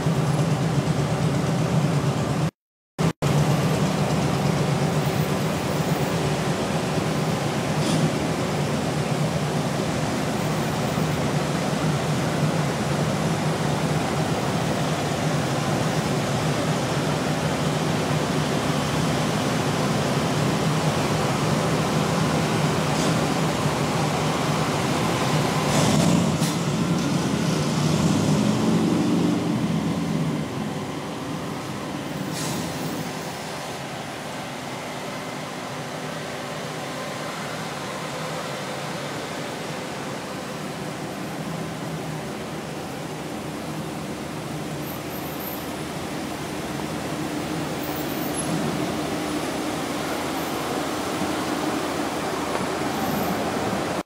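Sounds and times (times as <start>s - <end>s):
cars passing: 24.7s - 32.3s.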